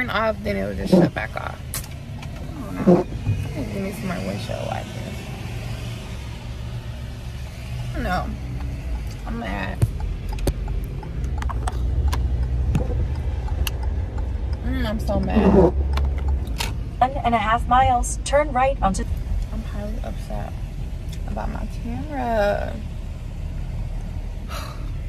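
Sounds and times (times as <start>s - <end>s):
car road and engine rumble: 0.0s - 25.0s
light ticks: 8.6s - 14.7s.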